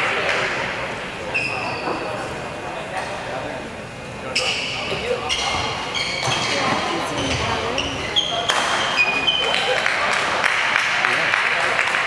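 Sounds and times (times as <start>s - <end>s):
background voices in a hall: 0.0s - 12.0s
shoe soles squeaking on court: 4.4s - 9.4s.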